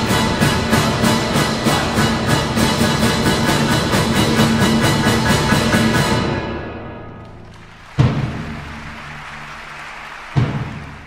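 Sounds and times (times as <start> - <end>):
orchestra playing loudly: 0.0 - 11.0.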